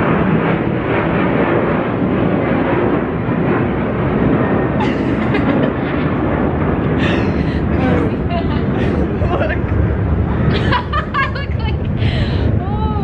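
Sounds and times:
jet airliner roaring overhead: 0.0s - 13.0s.

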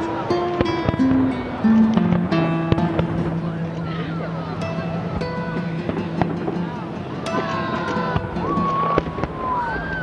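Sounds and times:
music with bending held notes: 0.0s - 9.0s
fireworks cracking: 0.5s - 10.0s.

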